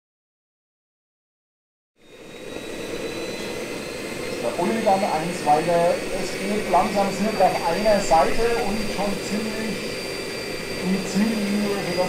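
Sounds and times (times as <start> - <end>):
model helicopter turbine whine: 2.0 - 12.0.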